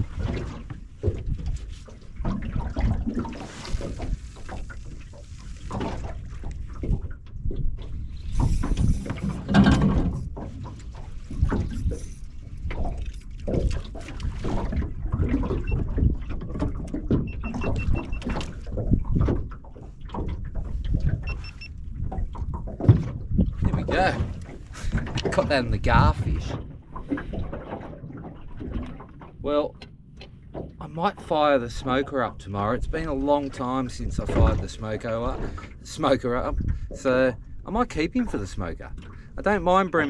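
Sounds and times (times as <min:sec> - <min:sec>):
rough wind noise: 0:00.0 - 0:29.6, 0:36.2 - 0:37.6
water lapping against boat hull: 0:00.0 - 0:40.0.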